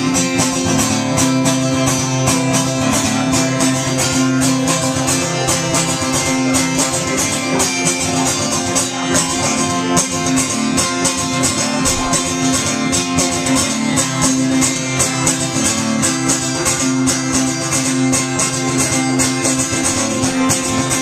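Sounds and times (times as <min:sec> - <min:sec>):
acoustic guitar strummed: 0:00.0 - 0:21.0.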